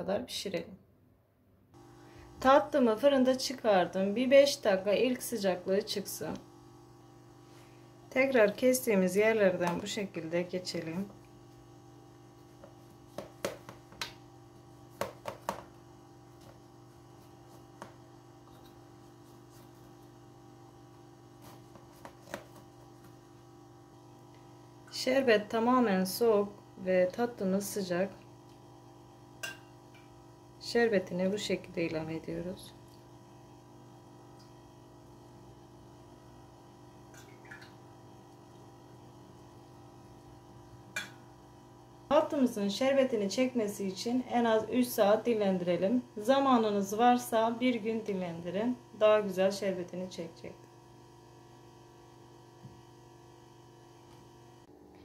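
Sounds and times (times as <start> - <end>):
steady low hum: 1.6 - 55.0.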